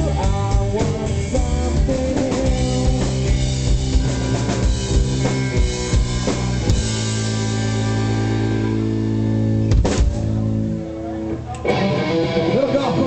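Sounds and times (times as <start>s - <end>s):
loose guitar playing: 0.0s - 13.0s
electric guitar chord ringing: 3.2s - 9.7s, 11.5s - 13.0s.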